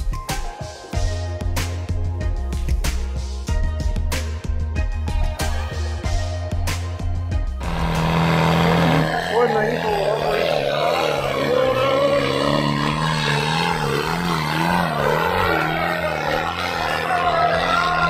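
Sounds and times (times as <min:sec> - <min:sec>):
tractor engine running under load: 0:07.6 - 0:17.9.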